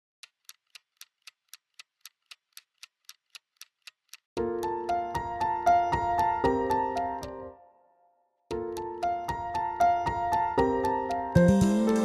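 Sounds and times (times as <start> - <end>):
clock ticking: 0.2 - 5.3, 8.5 - 10.2
sustained keyboard chords music: 8.5 - 12.0.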